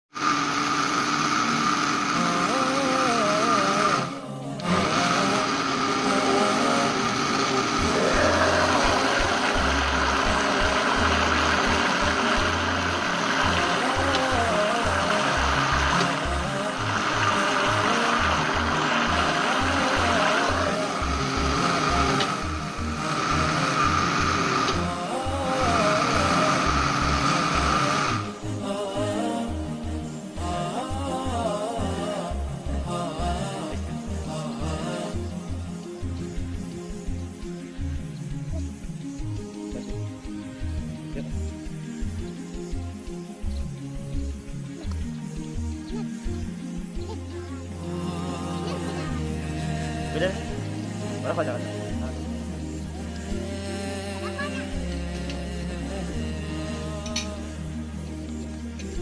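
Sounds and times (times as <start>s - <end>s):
electric blender running: 0.0s - 28.6s
background music with a beat: 2.0s - 59.0s.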